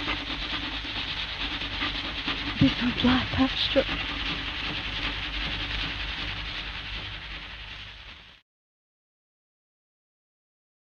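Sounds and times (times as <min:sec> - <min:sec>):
recording hiss: 0:00.0 - 0:08.4.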